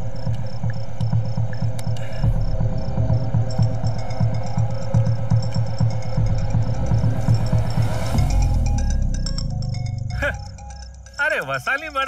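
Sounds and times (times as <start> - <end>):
low rapid throbbing pulse: 0.0 - 11.2
crickets chirping: 0.0 - 12.0.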